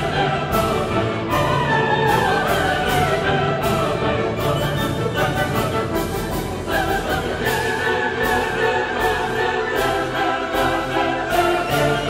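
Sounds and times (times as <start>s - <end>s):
choir singing held notes: 0.0s - 12.0s
orchestra playing: 0.0s - 12.0s.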